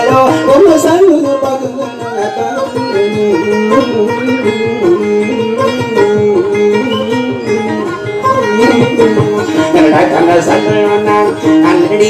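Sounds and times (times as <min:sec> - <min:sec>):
acoustic guitar plucked: 0:00.0 - 0:12.0.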